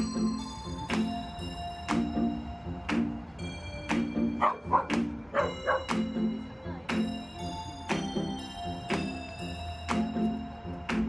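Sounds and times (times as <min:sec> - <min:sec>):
background music with beat: 0:00.0 - 0:11.0
dog barking: 0:04.4 - 0:05.9.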